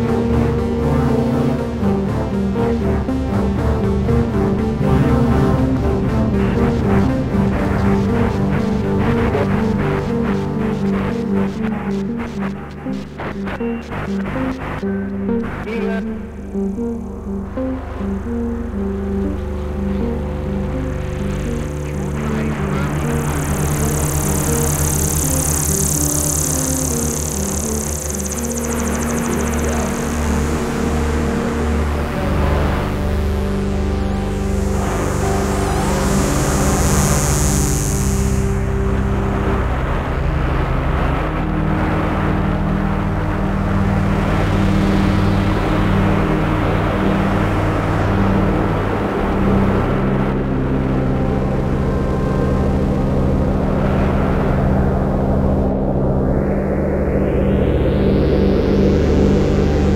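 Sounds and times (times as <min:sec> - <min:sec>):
pulsing sequenced arpeggio: 0:00.0 - 0:40.3
electronic lead melody: 0:00.0 - 0:40.5, 0:41.4 - 0:59.9
filtered noise swells: 0:00.0 - 0:59.9
synthesizer drones: 0:00.0 - 0:59.9.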